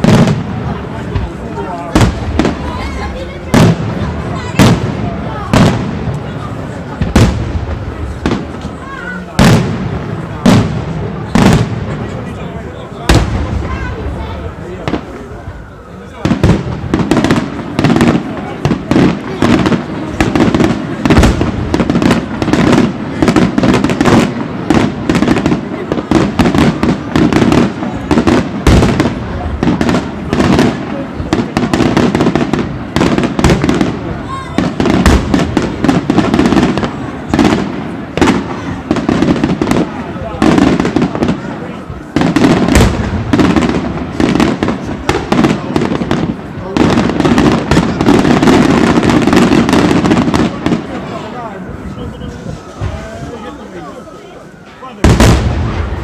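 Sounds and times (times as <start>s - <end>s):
fireworks bangs and crackling: 0.0s - 56.0s.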